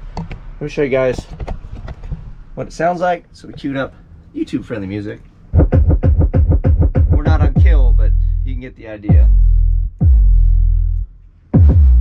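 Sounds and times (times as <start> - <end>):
loud bass-heavy car music: 5.6 - 12.0.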